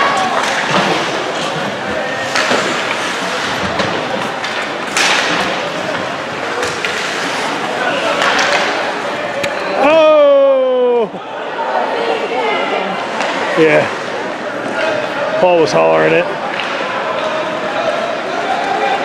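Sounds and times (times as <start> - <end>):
sticks and puck clacking: 0.0 - 9.8, 16.4 - 17.5
spectator chatter: 0.0 - 19.0
skates scraping on ice: 0.1 - 9.2.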